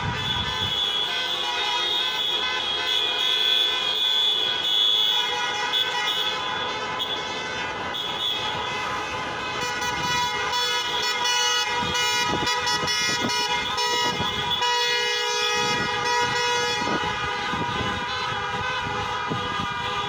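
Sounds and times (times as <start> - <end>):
car horns honking: 0.0 - 20.0.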